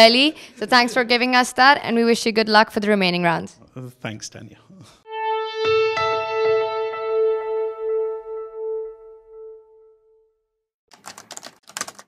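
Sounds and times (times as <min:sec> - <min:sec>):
outro music: 0:05.1 - 0:10.3
computer keyboard typing: 0:10.9 - 0:12.0.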